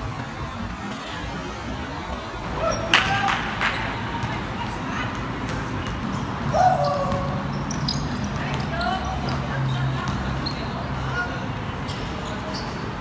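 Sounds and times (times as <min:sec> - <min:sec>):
players shouting: 0:02.4 - 0:04.8, 0:06.4 - 0:07.7
basketball bouncing on court: 0:04.1 - 0:06.3, 0:06.9 - 0:10.7.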